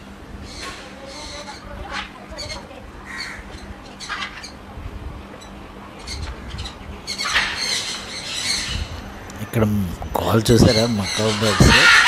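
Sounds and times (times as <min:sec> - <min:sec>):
macaws squawking: 0:00.4 - 0:04.7, 0:05.3 - 0:12.0.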